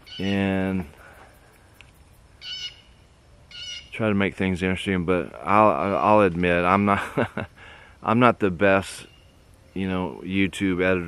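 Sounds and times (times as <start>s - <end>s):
high-pitched animal calls: 0.0s - 0.5s, 2.3s - 4.0s.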